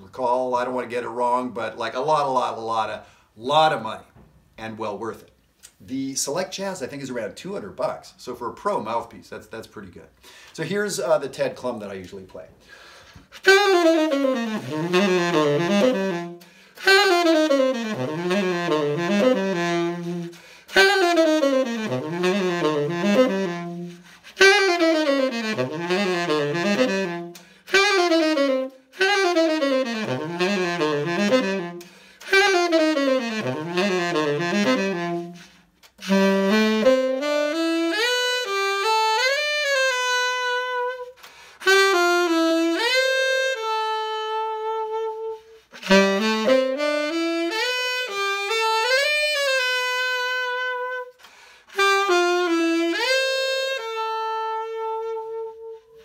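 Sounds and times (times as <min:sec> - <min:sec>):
tenor saxophone jazz phrase: 0:13.2 - 0:56.0.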